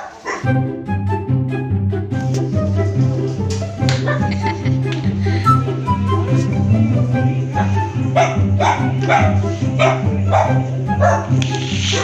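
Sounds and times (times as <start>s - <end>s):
small dog barking: 0.0s - 0.5s, 8.2s - 11.3s
background music with steady beat: 0.0s - 12.0s.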